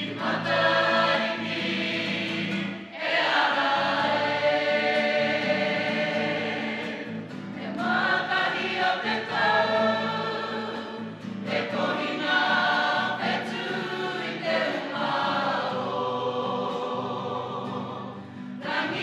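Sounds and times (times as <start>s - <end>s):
group singing together: 0.0s - 19.0s.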